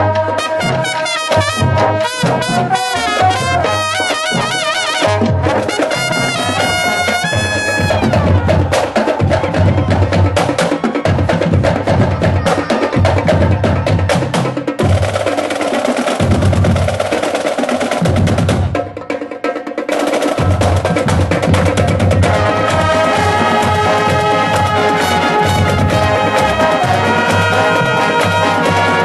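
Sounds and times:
brass chord: 0:00.0 - 0:08.8, 0:22.2 - 0:29.0
fast snare drum strokes: 0:00.0 - 0:29.0.

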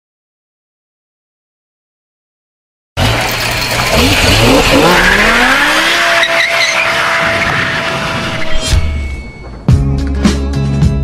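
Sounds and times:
car engine at high revs: 0:03.0 - 0:08.5
tyres squealing: 0:03.0 - 0:09.5.

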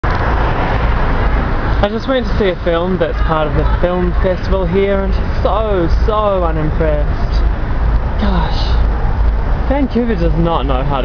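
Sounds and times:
city street traffic rumble: 0:00.0 - 0:11.0
man speaking: 0:01.8 - 0:07.5, 0:09.6 - 0:11.0.

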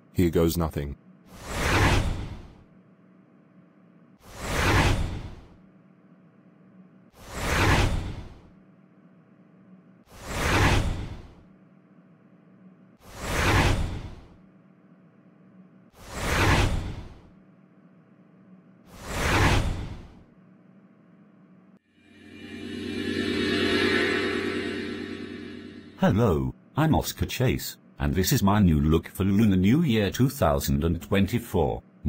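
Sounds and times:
rushing whoosh: 0:22.1 - 0:26.0.

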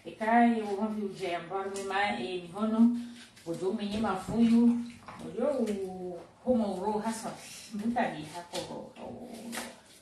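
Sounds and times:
woman talking: 0:00.0 - 0:09.8.

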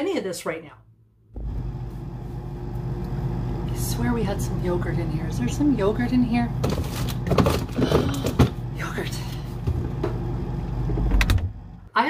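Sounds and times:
refrigerator rumble: 0:01.2 - 0:12.0.

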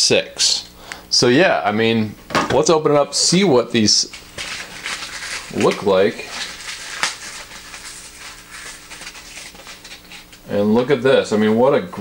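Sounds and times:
packaging rustling and crinkling: 0:03.8 - 0:10.4.

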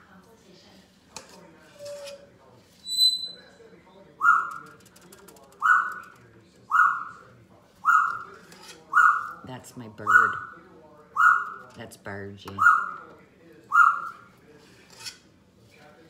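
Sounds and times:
pet bird calling: 0:04.2 - 0:04.6, 0:05.6 - 0:06.1, 0:06.7 - 0:07.2, 0:07.8 - 0:08.3, 0:08.9 - 0:09.4, 0:10.0 - 0:10.5, 0:11.2 - 0:11.6, 0:12.6 - 0:13.0, 0:13.7 - 0:14.2.

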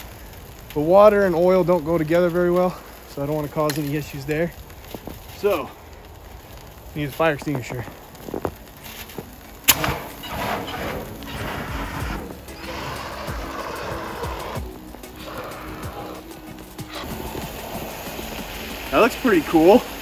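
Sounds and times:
music: 0:09.2 - 0:20.0
fire extinguisher spray hissing: 0:09.7 - 0:20.0.

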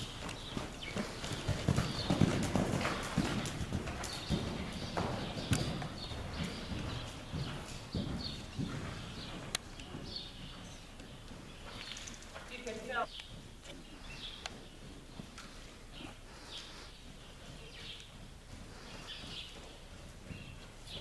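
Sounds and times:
horse trotting on sand: 0:00.0 - 0:21.0.

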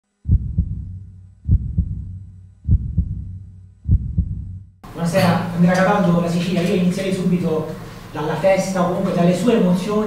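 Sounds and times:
low hum: 0:00.1 - 0:05.6
heartbeat double thumps: 0:00.2 - 0:04.8.

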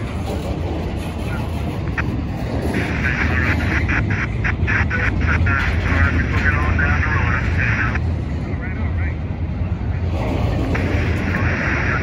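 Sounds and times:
rumble of train wheels on rail: 0:00.0 - 0:12.0.

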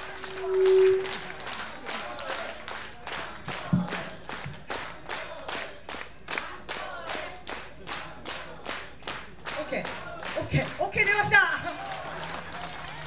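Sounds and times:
hands clapping in rhythm: 0:01.2 - 0:13.0.

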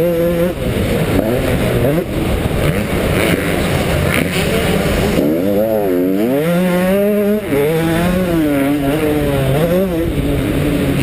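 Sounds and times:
rough rushing noise: 0:00.0 - 0:11.0
two-stroke motocross engine revving: 0:00.0 - 0:11.0.

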